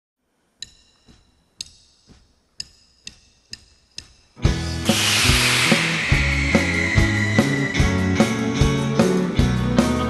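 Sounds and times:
sharp ringing count-in clicks: 0.6s - 4.4s
band playing drums and bass: 4.4s - 10.0s
crash cymbal: 4.5s - 9.2s.

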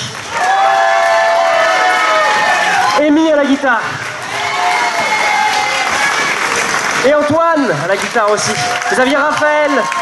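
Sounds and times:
audience applauding: 0.0s - 10.0s
crowd cheering: 0.0s - 10.0s
long shout: 0.3s - 3.1s.

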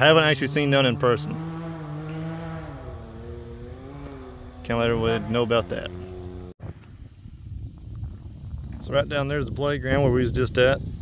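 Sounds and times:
vehicle engine running: 0.0s - 6.6s.

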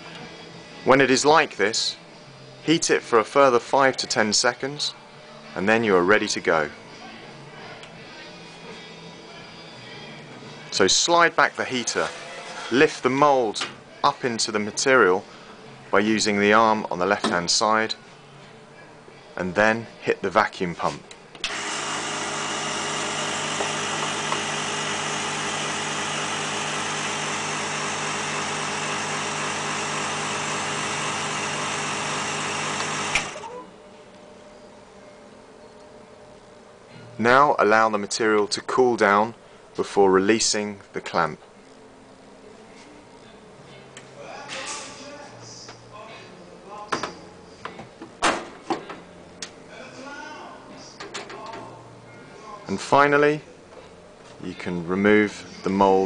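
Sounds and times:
vacuum pump rushing and humming: 21.4s - 33.6s
faint hum: 33.3s - 37.5s.

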